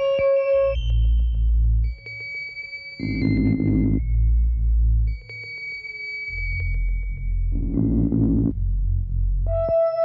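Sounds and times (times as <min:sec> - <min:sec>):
deep buzzing synth drone: 0:03.0 - 0:05.1, 0:07.3 - 0:10.0
low sinking synth tone: 0:07.5 - 0:10.0.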